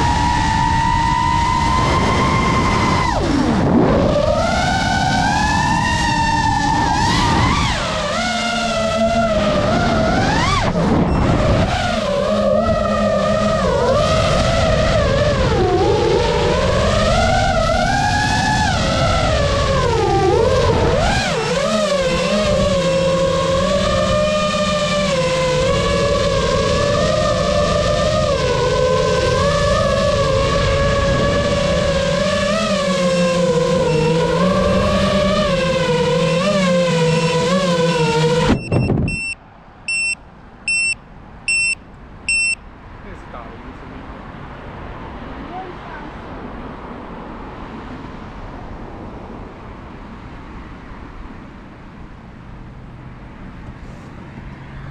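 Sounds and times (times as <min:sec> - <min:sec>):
drone propellers whining: 0:00.0 - 0:54.9
short high electronic beeps: 0:38.6 - 0:42.6.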